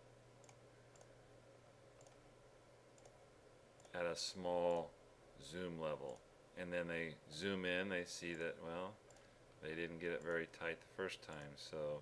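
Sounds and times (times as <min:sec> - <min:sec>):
low steady hum: 0:00.0 - 0:12.0
faint computer mouse clicks: 0:00.4 - 0:01.1, 0:02.0 - 0:02.2, 0:03.0 - 0:03.2, 0:09.1 - 0:09.3.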